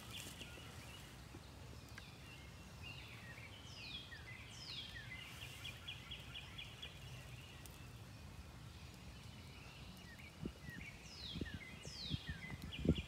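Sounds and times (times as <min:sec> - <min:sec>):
songbirds singing: 0:00.0 - 0:13.0.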